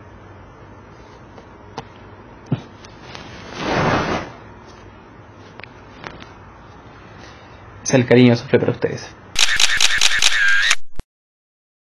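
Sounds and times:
sharp clicks: 0:09.4 - 0:11.0.

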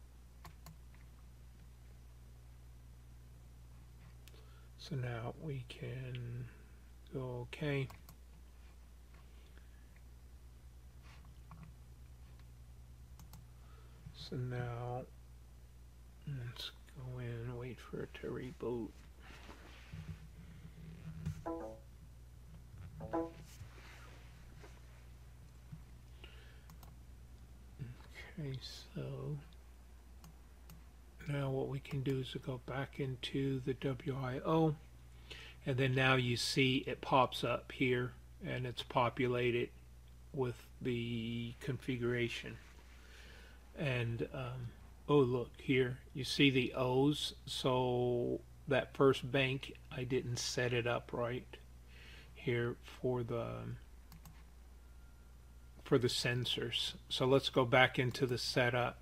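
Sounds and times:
low steady hum: 0:00.0 - 0:59.0
computer mouse clicks: 0:13.2 - 0:13.4, 0:26.7 - 0:27.0, 0:54.1 - 0:54.4.

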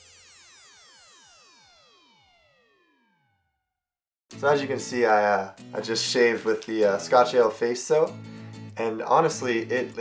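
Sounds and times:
background music: 0:04.3 - 0:10.0.

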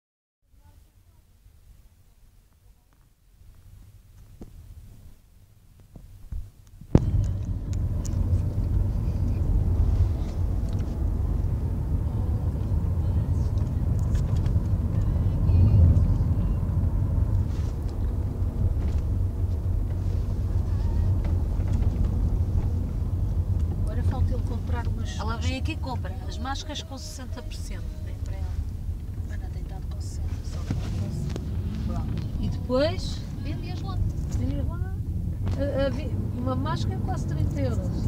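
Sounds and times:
car engine and road rumble: 0:00.5 - 0:38.0.

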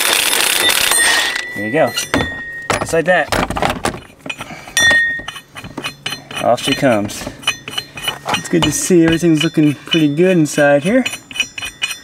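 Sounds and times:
metal clinks: 0:00.0 - 0:12.0
metal ringing ping: 0:00.6 - 0:03.2, 0:04.8 - 0:12.0.

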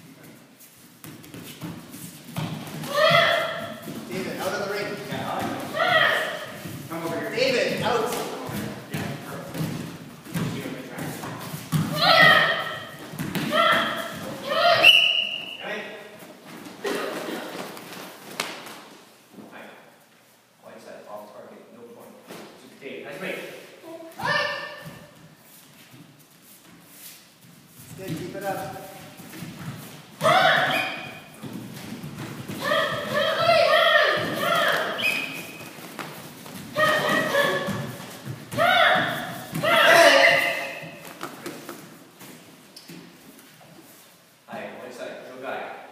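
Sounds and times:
bare feet thudding: 0:01.0 - 0:04.3, 0:27.8 - 0:43.2
high-pitched shouted kiai: 0:02.9 - 0:03.8, 0:05.7 - 0:06.6, 0:11.9 - 0:15.4, 0:23.8 - 0:25.0, 0:30.2 - 0:31.2, 0:32.6 - 0:35.4, 0:36.8 - 0:37.9, 0:38.5 - 0:40.9.

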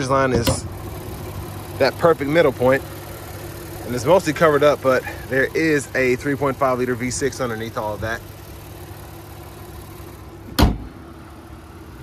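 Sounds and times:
car engine idling: 0:00.0 - 0:12.0
car hood slamming shut: 0:00.3 - 0:00.7, 0:10.5 - 0:11.0.

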